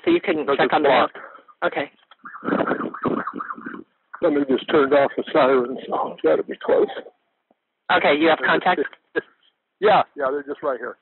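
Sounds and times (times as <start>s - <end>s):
emergency siren yelping: 2.2s - 3.8s.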